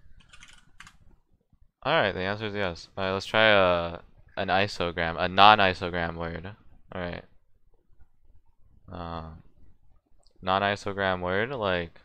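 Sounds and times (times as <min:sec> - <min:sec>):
soft keystrokes on keyboard: 0:00.2 - 0:01.0.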